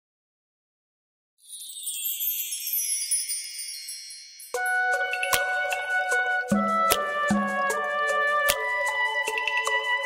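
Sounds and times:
wind chimes: 1.4s - 5.8s.

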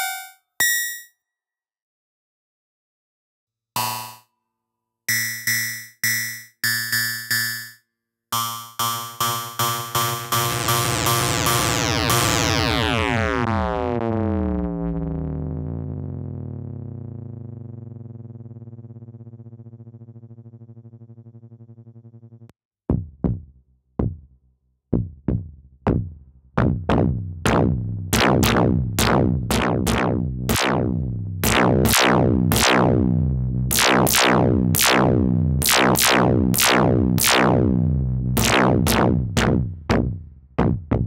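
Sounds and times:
low wavering synthesizer note: 10.5s - 22.5s, 27.5s - 39.6s
metallic synth percussion hit: 27.5s - 37.6s, 38.4s - 39.6s.

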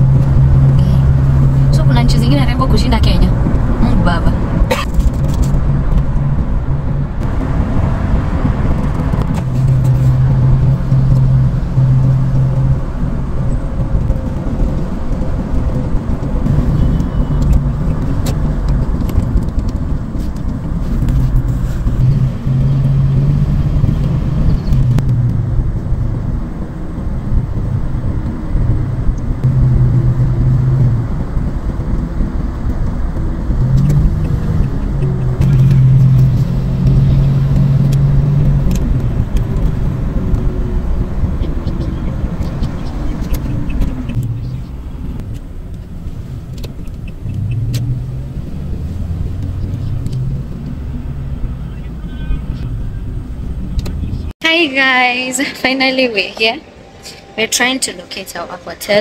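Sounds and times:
humming drone: 0.0s - 19.7s, 21.9s - 59.0s
car engine and tyres rumbling: 0.0s - 59.0s.

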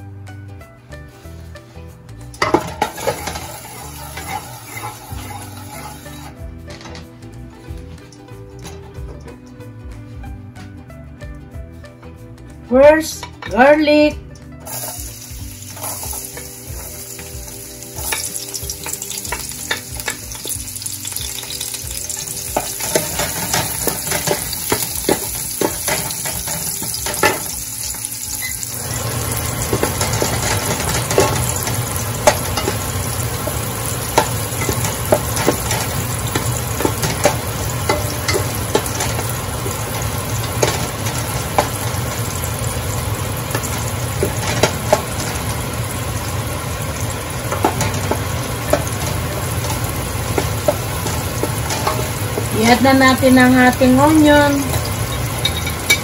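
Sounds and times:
garlic sizzling in hot oil: 1.0s - 6.6s, 14.3s - 56.0s
wooden spatula scraping pot: 2.6s - 6.4s, 47.4s - 56.0s.

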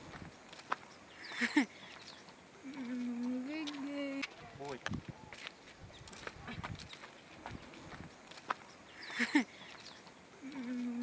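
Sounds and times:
faint footsteps on dirt road: 0.0s - 11.0s.

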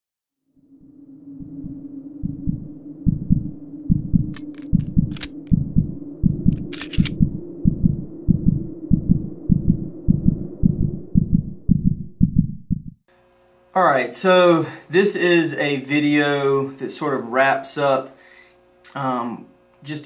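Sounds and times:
low steady drone: 0.6s - 12.2s
deep bass pulses: 1.4s - 13.0s
sharp metallic clicks: 4.4s - 5.6s, 6.5s - 7.2s.

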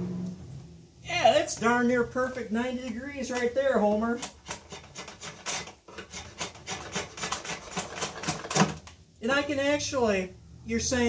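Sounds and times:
drawknife scraping wood: 4.1s - 8.9s.

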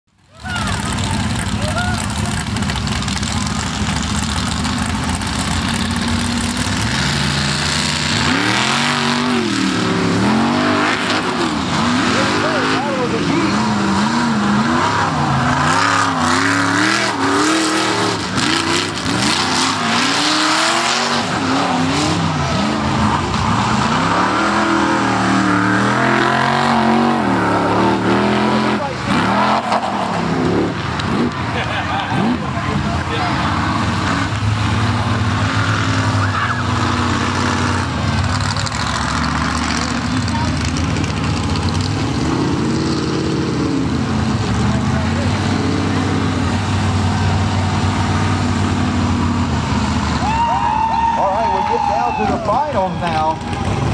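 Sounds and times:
race truck engines revving: 0.1s - 53.9s.

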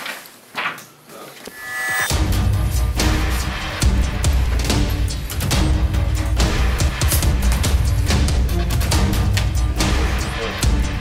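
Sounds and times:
paper rustling: 0.0s - 0.8s.

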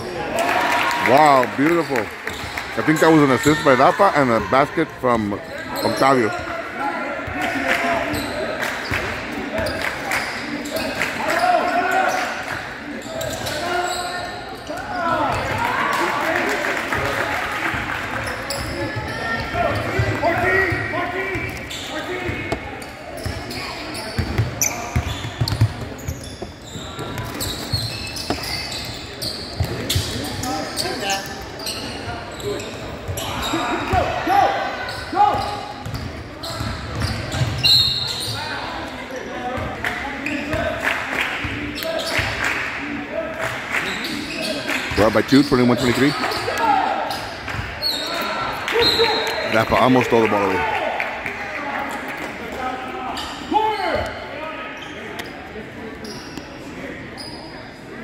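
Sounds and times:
voices echoing in a hall: 0.0s - 58.0s.

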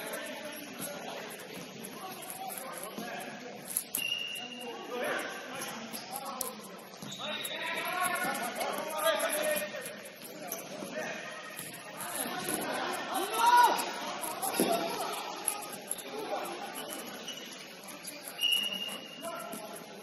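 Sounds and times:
players shouting in a gym: 0.0s - 17.7s
ball and shoes on court: 0.0s - 20.0s
shoe squeak: 0.0s - 20.0s.

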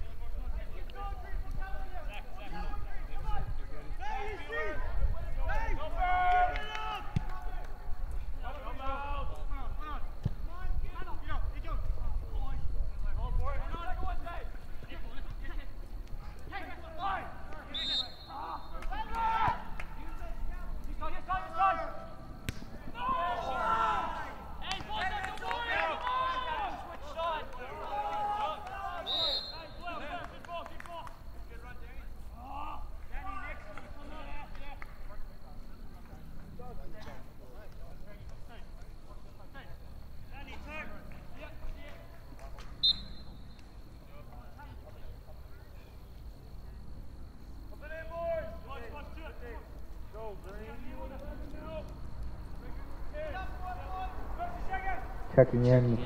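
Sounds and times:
people calling out and talking: 0.0s - 56.0s.

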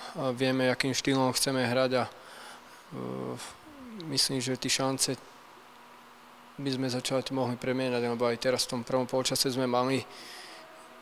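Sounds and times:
man humming hesitation sound: 3.0s - 4.5s.

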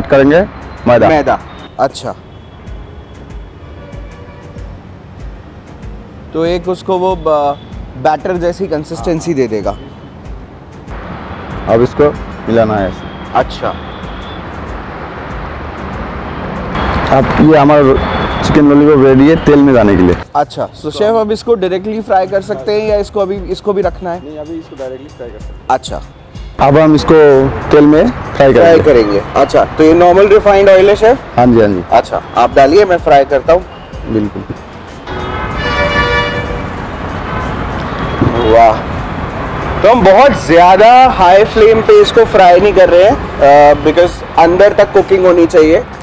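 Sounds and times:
outdoor background rush: 0.0s - 46.0s
man speaking: 6.4s - 10.0s, 17.1s - 34.6s, 38.3s - 38.9s.

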